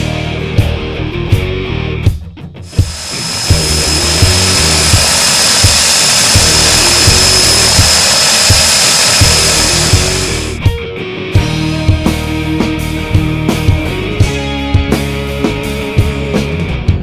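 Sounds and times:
rock music with regular beat: 0.0s - 17.0s
rushing propeller noise: 2.7s - 10.6s
turboprop engines whining: 2.7s - 10.6s.

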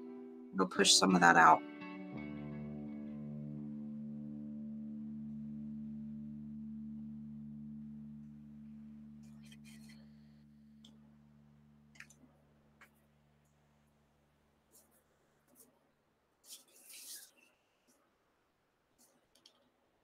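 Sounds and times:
low chord of background music: 0.0s - 13.4s.

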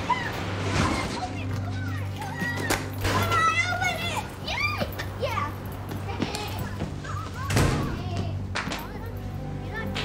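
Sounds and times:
children shouting and squealing: 0.0s - 9.9s.

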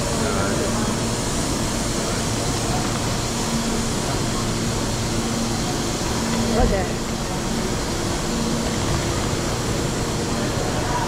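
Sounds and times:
electric train humming: 0.0s - 11.0s.

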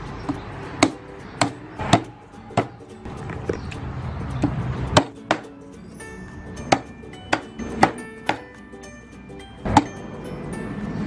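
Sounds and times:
cleaver chopping on wooden block: 0.3s - 3.6s, 5.0s - 5.4s, 6.6s - 8.5s.

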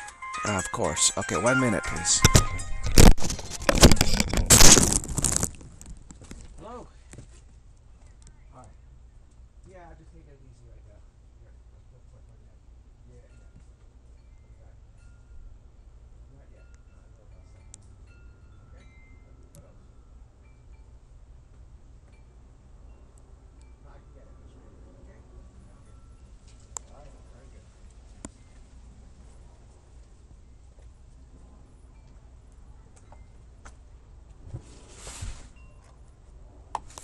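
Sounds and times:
microphone handling noise: 2.2s - 6.6s
high chime-like ringing tones: 13.2s - 21.3s, 22.0s - 24.5s, 25.5s - 26.6s, 35.5s - 36.2s.

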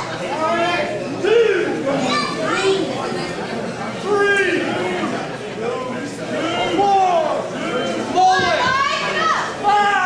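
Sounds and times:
children shouting: 1.3s - 3.0s, 8.2s - 10.0s.

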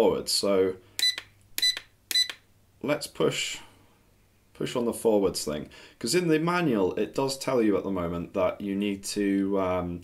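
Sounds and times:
short electronic beeps: 1.0s - 2.4s.

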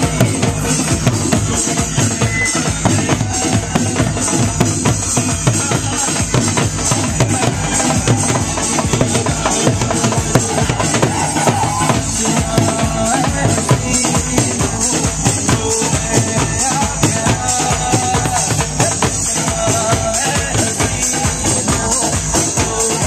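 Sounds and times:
dance music with barrel drum: 0.0s - 23.0s.

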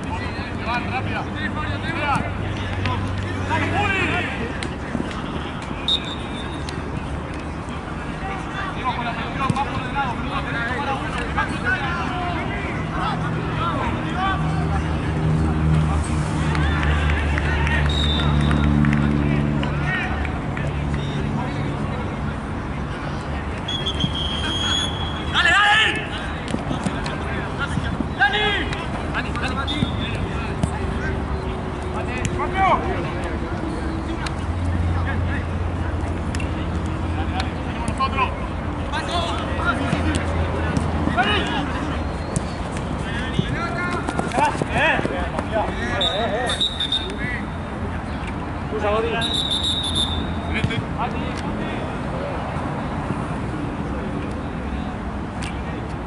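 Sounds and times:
players shouting: 0.0s - 21.6s, 23.6s - 33.9s, 37.1s - 47.7s, 48.8s - 50.8s
crowd chatter: 0.0s - 56.0s
whistle blast: 5.8s - 6.6s, 17.9s - 18.6s, 23.7s - 25.4s, 45.9s - 47.2s, 49.2s - 50.4s.

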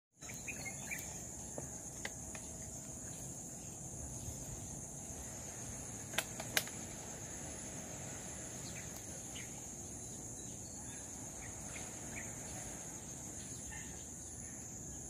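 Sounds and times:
outdoor background noise: 0.1s - 15.0s
insects droning: 0.2s - 15.0s.

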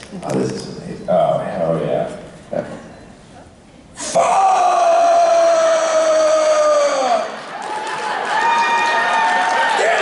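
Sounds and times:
man screaming into microphone: 4.0s - 7.4s.

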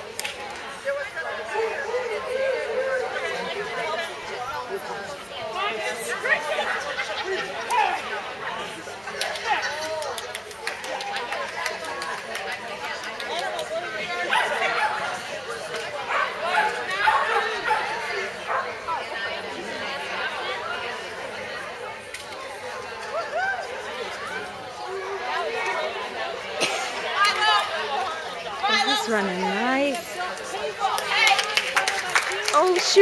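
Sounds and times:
chatter of overlapping voices: 0.0s - 33.0s.

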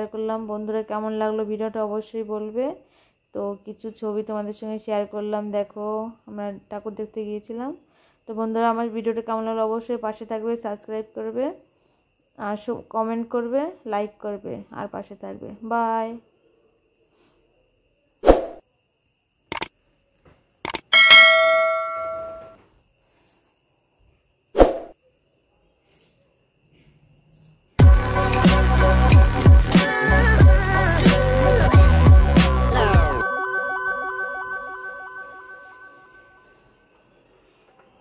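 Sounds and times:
bell chime: 20.9s - 22.6s, 33.2s - 36.6s
electronic music: 27.8s - 36.2s.

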